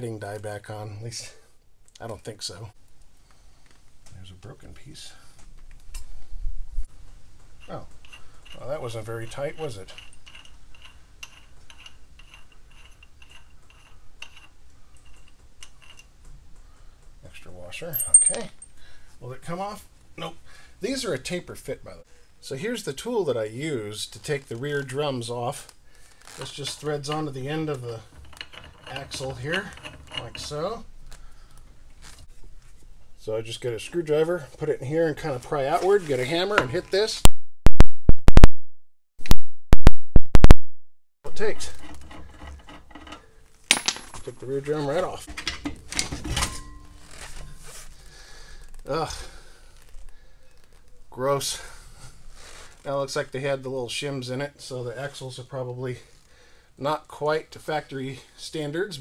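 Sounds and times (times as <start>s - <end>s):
metallic nut ticking: 7.4s - 16.9s.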